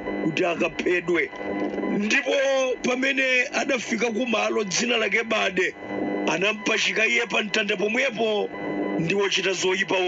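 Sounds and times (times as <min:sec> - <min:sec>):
person speaking: 0:00.2 - 0:01.4, 0:02.0 - 0:10.0.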